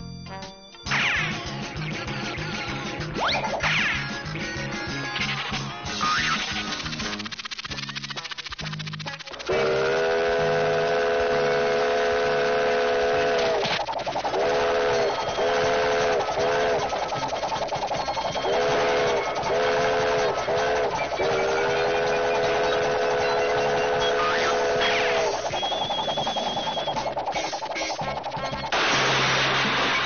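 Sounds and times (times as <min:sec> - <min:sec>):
multi-note steam whistle blasts: 0:09.5 - 0:13.6, 0:14.2 - 0:29.0.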